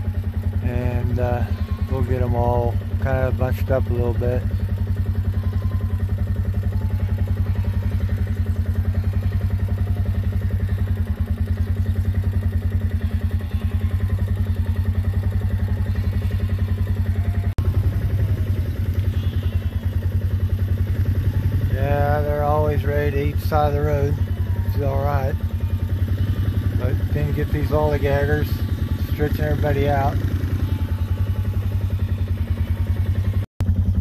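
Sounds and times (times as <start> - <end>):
vehicle engine idling: 0.0 - 34.0.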